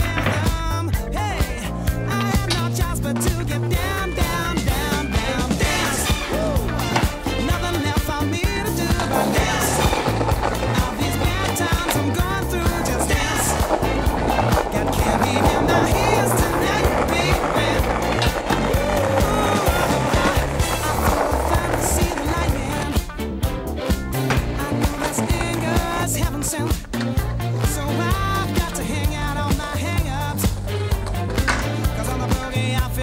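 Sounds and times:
skateboard clacks and scrapes on rail: 0:00.0 - 0:00.8, 0:02.1 - 0:23.1, 0:23.8 - 0:32.8
music with steady beat: 0:00.0 - 0:33.0
skateboard wheels rolling on concrete: 0:00.0 - 0:33.0.

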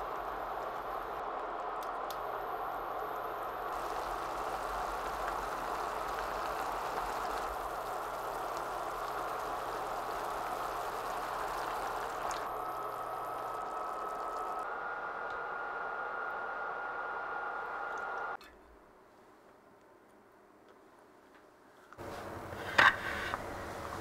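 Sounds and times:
food sizzling in broth: 0:03.7 - 0:14.6.

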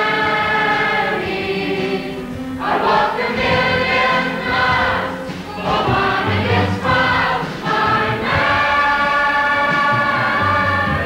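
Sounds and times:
young performers singing in chorus: 0:00.0 - 0:11.0.

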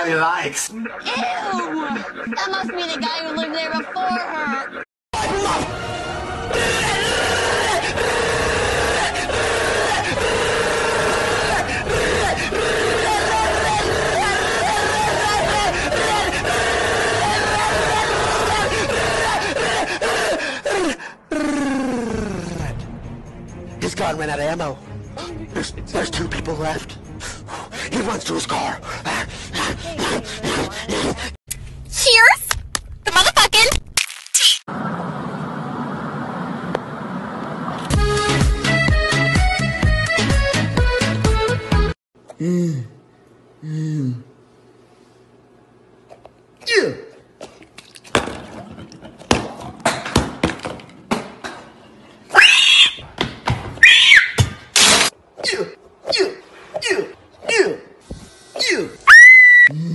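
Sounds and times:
man making strained vocal sounds: 0:00.7 - 0:04.8, 0:42.3 - 0:43.0
person screaming: 0:06.6 - 0:22.0, 0:52.4 - 0:53.0, 0:59.0 - 0:59.9
short falling cries: 0:52.3 - 0:53.0, 0:59.1 - 0:59.7.

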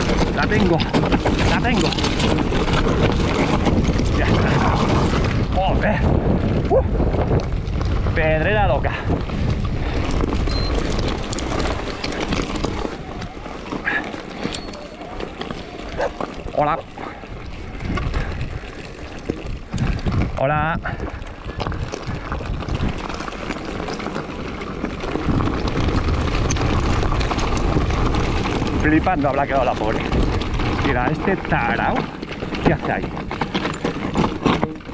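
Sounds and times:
wind on microphone: 0:00.0 - 0:23.3
bike tyres rolling over stony trail: 0:00.0 - 0:34.9.

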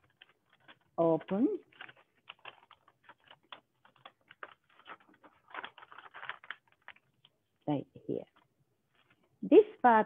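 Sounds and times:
paper crinkling and creasing: 0:00.0 - 0:07.6.

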